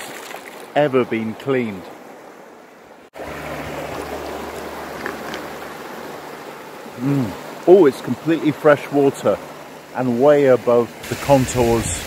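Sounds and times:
mountain stream running: 0.0 - 12.0.

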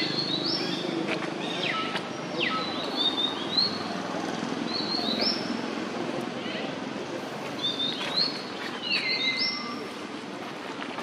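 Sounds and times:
birds chirping: 0.0 - 4.0, 4.6 - 5.7, 7.5 - 10.0
low background murmur: 0.0 - 11.0.

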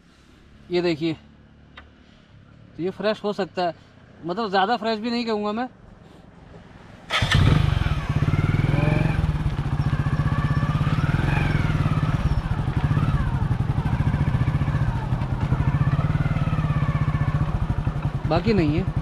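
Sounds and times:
motorcycle engine running: 7.1 - 19.0.

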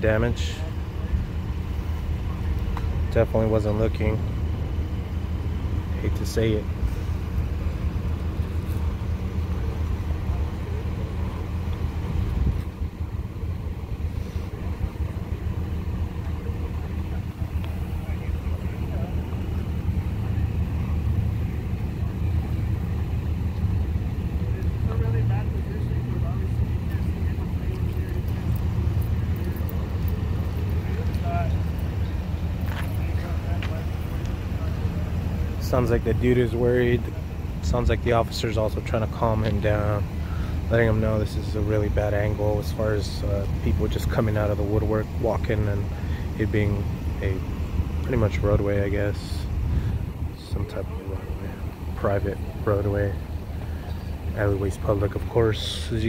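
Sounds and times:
vehicle engine idling: 0.0 - 56.0.

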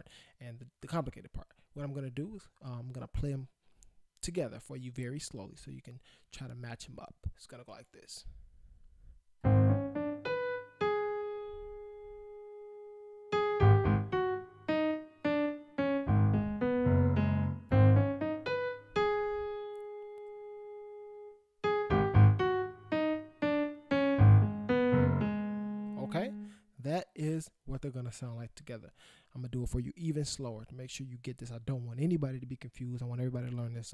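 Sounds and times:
digital piano playing: 9.4 - 26.6.

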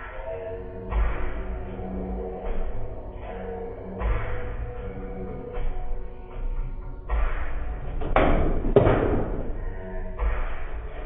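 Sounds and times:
foosball ball and rods clattering: 8.0 - 9.6
hard knocks: 8.0 - 9.6.

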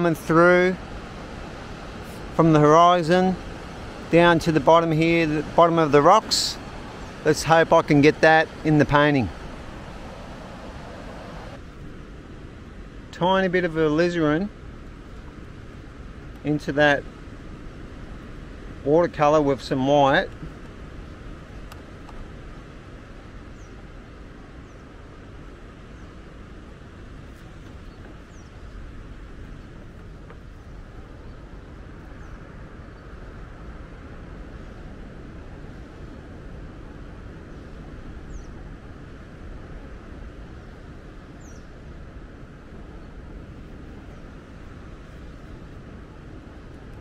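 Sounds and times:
outdoor rumble and hiss: 0.0 - 47.0.

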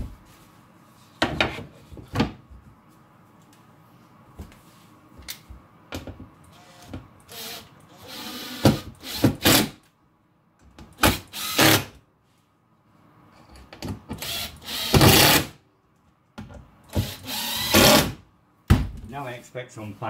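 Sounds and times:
cordless drill motor whine: 6.5 - 9.2, 17.1 - 18.0.

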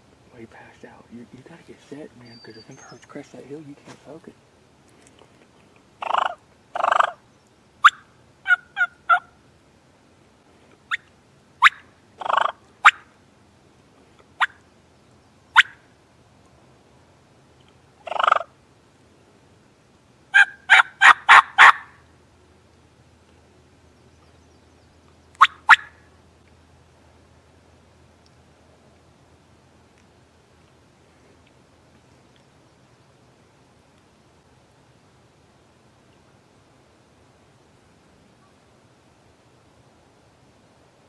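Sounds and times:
turkey clucks and yelps: 6.0 - 7.2, 7.8 - 9.3, 11.6 - 13.1, 18.0 - 18.5, 20.3 - 21.9.

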